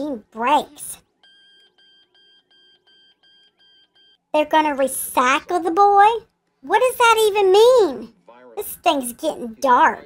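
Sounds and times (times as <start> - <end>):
faint electronic alarm beeping: 0.9 - 4.4.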